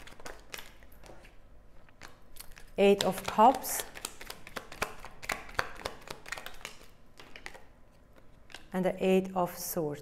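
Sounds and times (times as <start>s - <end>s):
cards being shuffled: 0.0s - 8.8s.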